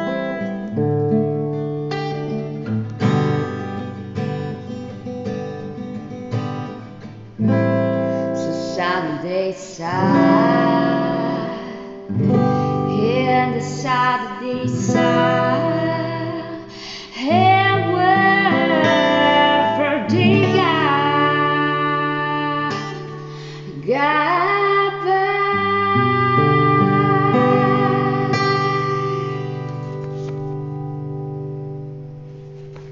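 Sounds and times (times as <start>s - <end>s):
fingerpicked acoustic guitar: 0.0s - 32.9s
woman singing: 7.5s - 29.7s.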